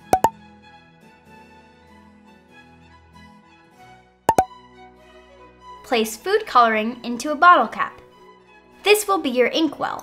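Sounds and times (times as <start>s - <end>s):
light background music: 4.3s - 10.0s.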